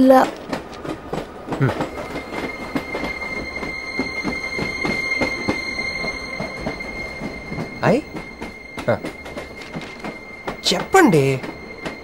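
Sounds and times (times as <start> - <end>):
train wheels rumbling on track: 0.0 - 12.0.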